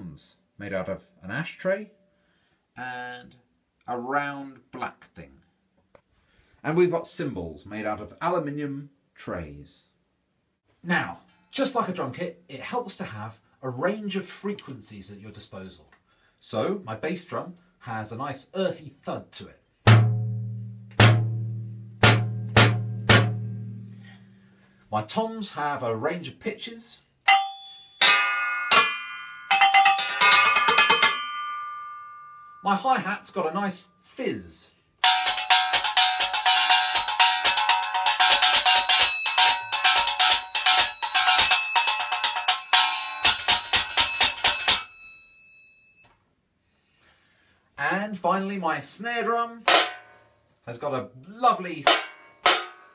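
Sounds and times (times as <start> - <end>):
paint tin bass drum thuds: 19.9 - 24.0, 35.0 - 45.0, 49.7 - 50.1
metallic junk percussion hi-hat: 19.9 - 24.2, 27.3 - 32.6, 35.0 - 45.2, 49.7 - 50.2, 51.8 - 52.9
bell ringing: 27.3 - 32.8, 35.0 - 46.1.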